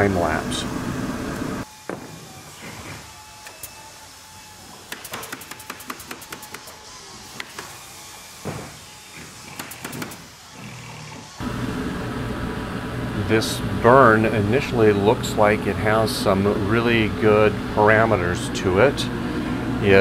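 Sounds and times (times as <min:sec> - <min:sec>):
laser engraver motors whirring: 0:00.8 - 0:11.5.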